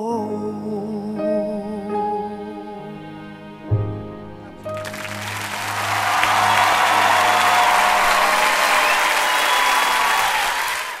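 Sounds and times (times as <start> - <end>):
audience applause: 4.7 - 11.0.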